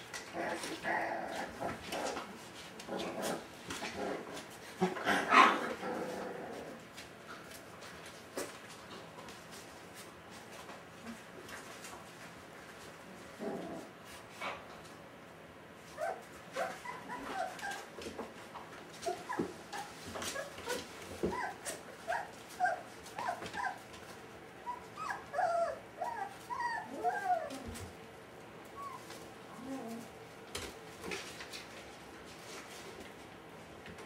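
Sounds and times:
puppies whimpering and yipping: 15.9 - 18.0, 19.0 - 23.9, 24.6 - 27.9, 28.7 - 30.1.

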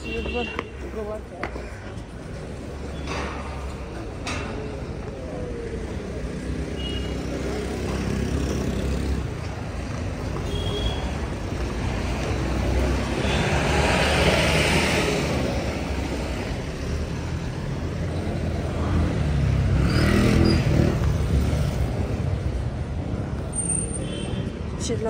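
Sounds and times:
cars passing by: 0.0 - 25.0
low traffic rumble: 0.0 - 25.0.

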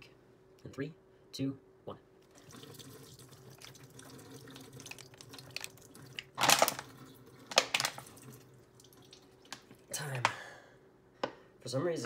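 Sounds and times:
thin water stream into metal sink: 2.4 - 9.6.

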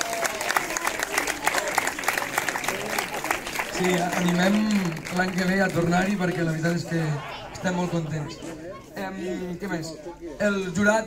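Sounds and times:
audience applauding: 0.0 - 7.8
man speaking: 3.7 - 11.0.

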